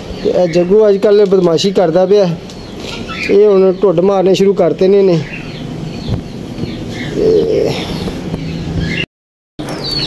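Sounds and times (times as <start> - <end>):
small birds chirping: 0.0 - 10.0
bird cooing: 6.9 - 8.2.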